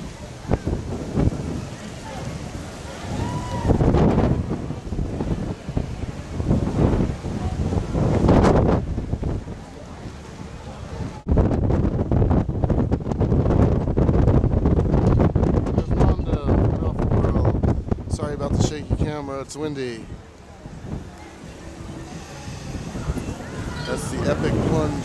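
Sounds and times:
wind buffeting microphone: 0:00.0 - 0:25.0
faint music: 0:18.1 - 0:25.0.

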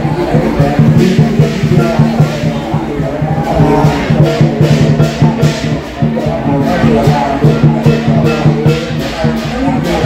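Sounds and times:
fast percussion beat: 0:00.0 - 0:10.0.

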